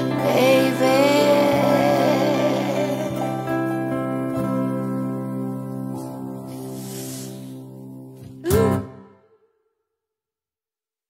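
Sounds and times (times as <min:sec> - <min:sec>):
acoustic guitar chords: 0:00.0 - 0:09.3.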